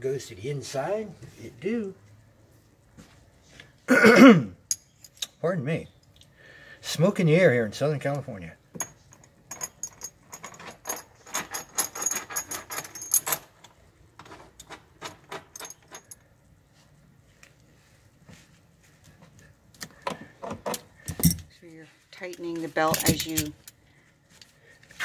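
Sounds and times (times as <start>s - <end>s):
metal hardware clinking: 4.7s - 5.4s, 8.8s - 16.2s, 20.7s - 21.5s, 22.8s - 23.8s.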